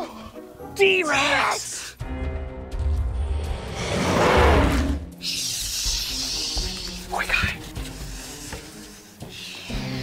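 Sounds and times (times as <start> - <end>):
dramatic background music: 0.0 - 10.0
dinosaur roar: 3.6 - 5.1
high hissing breath: 5.2 - 7.0, 7.9 - 10.0.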